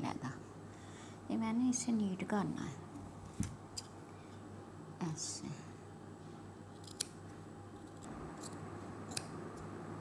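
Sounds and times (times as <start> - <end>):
shear blades snipping: 6.8 - 7.2, 7.9 - 9.4.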